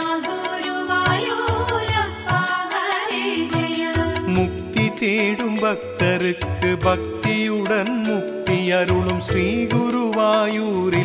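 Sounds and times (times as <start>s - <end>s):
devotional song with percussion: 0.0s - 11.0s
person singing: 0.0s - 11.0s.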